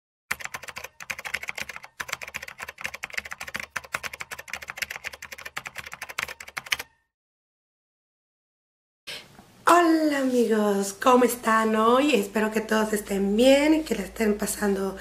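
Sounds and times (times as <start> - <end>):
keyboard typing clicks: 0.3 - 7.0.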